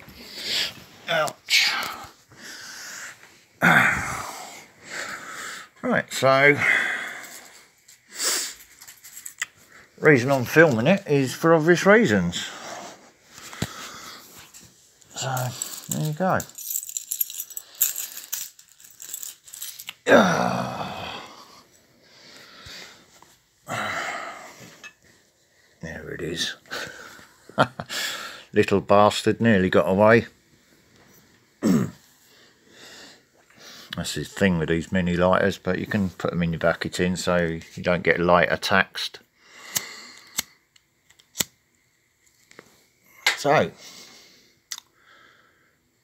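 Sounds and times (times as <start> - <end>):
small metal objects jingling: 8.5 - 9.4, 15.1 - 20.1.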